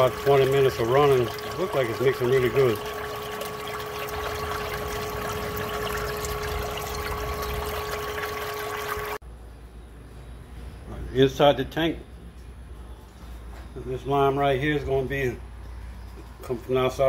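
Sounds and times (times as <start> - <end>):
pump whine: 0.0 - 9.2
water splashing and churning: 0.0 - 9.2.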